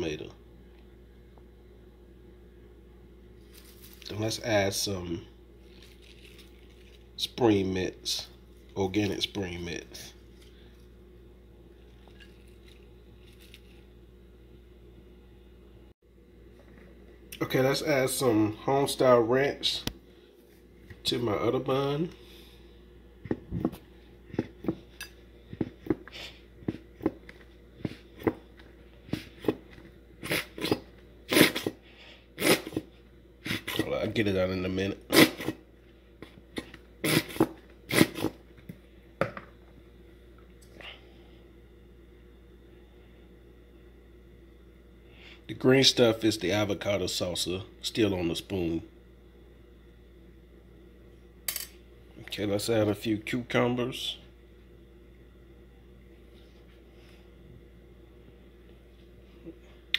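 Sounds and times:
low steady hum: 0.0s - 59.9s.

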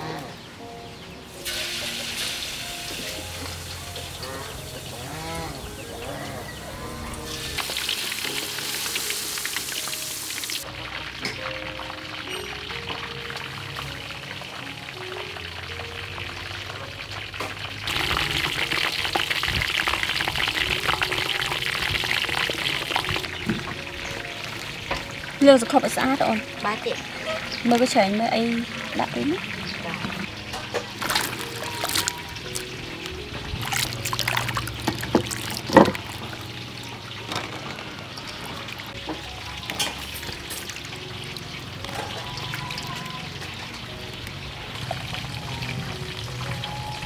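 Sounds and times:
soft background music: 0.0s - 47.0s
noodles sizzling in a wok: 7.3s - 11.4s, 12.0s - 23.2s.

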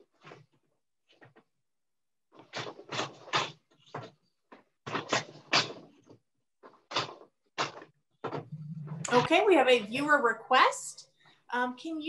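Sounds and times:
wooden loom knocking and clacking: 2.3s - 8.6s.

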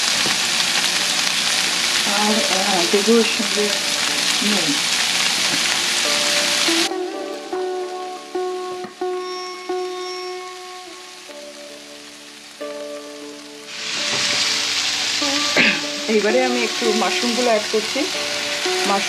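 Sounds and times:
music of held notes: 0.0s - 19.0s
vegetables sizzling in oil: 0.0s - 19.0s.

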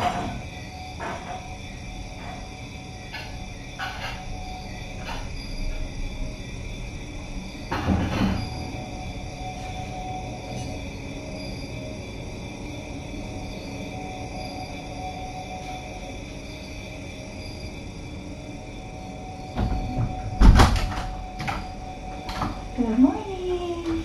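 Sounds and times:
low background hum: 0.0s - 24.0s
door opening clatter: 19.6s - 22.7s.

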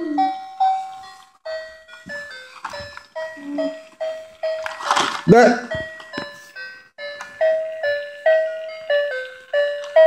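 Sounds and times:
toy train electronic tune: 0.0s - 4.9s, 5.6s - 10.0s.

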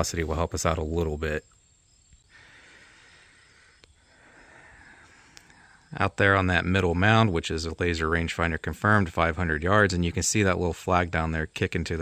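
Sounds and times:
quiet even hiss: 0.0s - 12.0s
faint clicks: 3.8s - 4.0s, 5.0s - 5.6s.

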